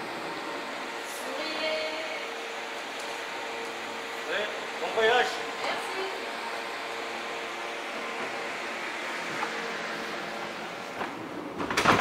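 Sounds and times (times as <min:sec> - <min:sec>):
refrigeration fan humming: 0:00.0 - 0:12.0.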